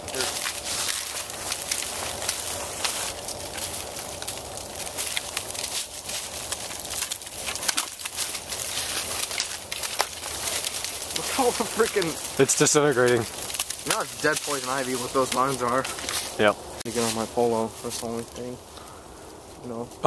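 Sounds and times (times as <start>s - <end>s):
dry leaves and twigs crackling: 0.0s - 20.0s.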